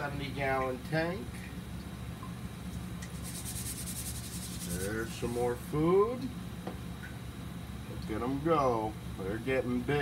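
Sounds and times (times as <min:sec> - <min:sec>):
low hum of aquaponics system: 0:00.0 - 0:10.0.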